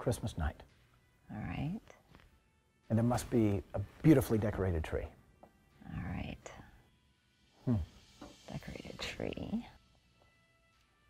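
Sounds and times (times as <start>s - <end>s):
person whispering: 7.7s - 7.9s.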